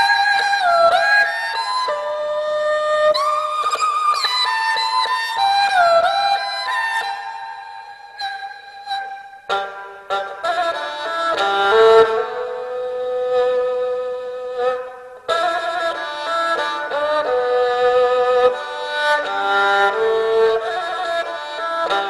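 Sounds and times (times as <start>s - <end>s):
bowed fiddle slow melody: 0.0s - 22.0s.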